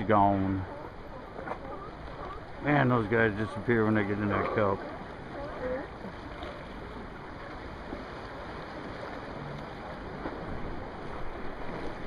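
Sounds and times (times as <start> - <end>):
sea water rushing: 0.0 - 12.0
wind: 0.0 - 12.0.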